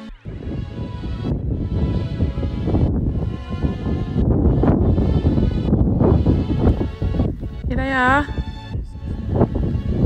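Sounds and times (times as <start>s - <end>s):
background music held notes: 0.0s - 10.0s
wind buffeting microphone: 0.0s - 10.0s.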